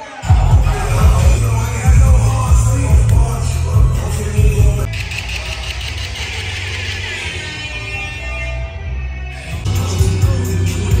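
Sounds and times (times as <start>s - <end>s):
bass-heavy hip-hop beat: 0.0s - 11.0s.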